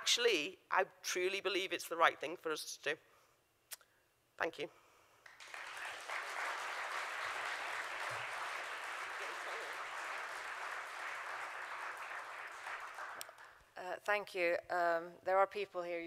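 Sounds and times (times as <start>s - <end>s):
audience applause: 5.3s - 13.6s.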